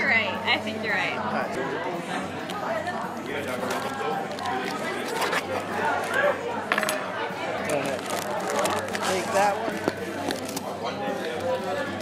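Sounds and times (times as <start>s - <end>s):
chatter of diners: 0.0s - 12.0s.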